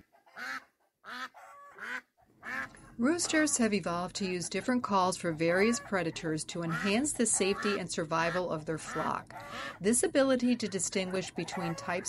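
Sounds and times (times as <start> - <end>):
ducks quacking: 0.0 - 12.0.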